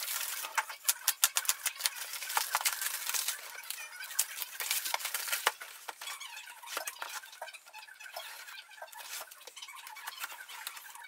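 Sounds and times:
plastic wrapping tearing and crinkling: 0:00.0 - 0:07.3.

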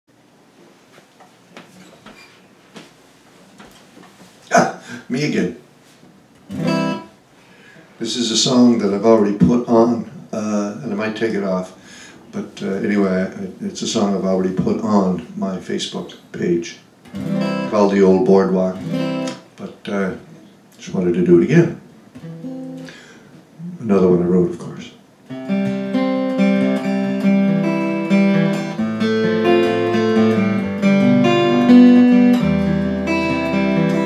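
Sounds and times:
acoustic guitar strum: 0:06.5 - 0:07.1, 0:17.1 - 0:19.5, 0:25.3 - 0:34.0
man's voice: 0:17.7 - 0:18.8.

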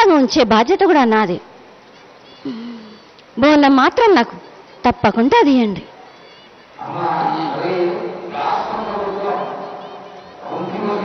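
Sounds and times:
crowd noise: 0:01.4 - 0:11.0.

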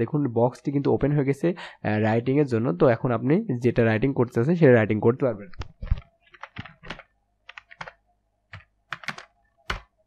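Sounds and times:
computer keyboard typing: 0:05.8 - 0:10.0.

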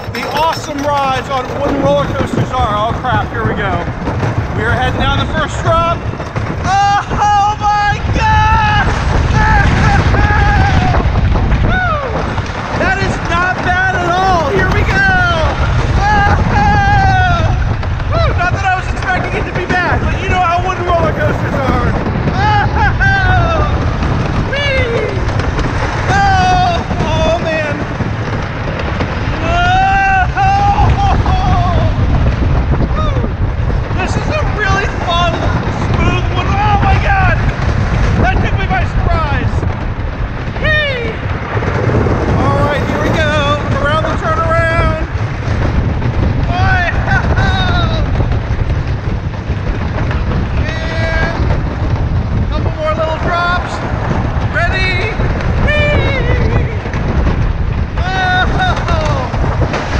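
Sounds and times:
riders whooping and screaming: 0:00.0 - 0:59.9
roller coaster rumbling on wooden track: 0:00.0 - 0:59.9.

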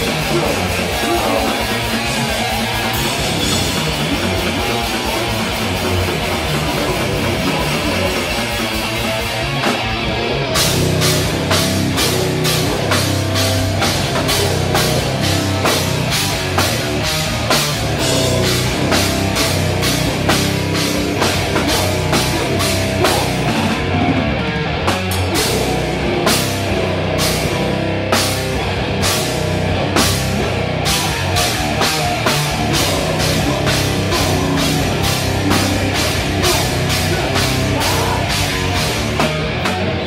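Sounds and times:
distorted electric guitars: 0:00.0 - 0:40.0
drum kit: 0:00.0 - 0:40.0.

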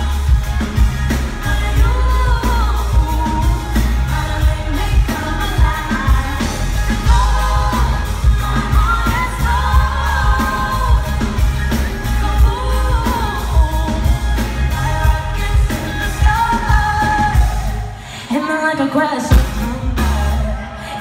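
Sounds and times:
band playing drums bass keyboards: 0:00.0 - 0:18.0, 0:19.2 - 0:21.0
woman singing live pop: 0:00.0 - 0:21.0.

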